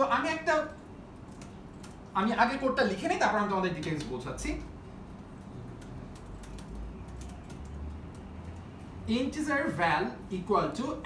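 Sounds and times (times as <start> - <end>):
keyboard keys clicking: 0.7 - 2.2, 5.1 - 8.8.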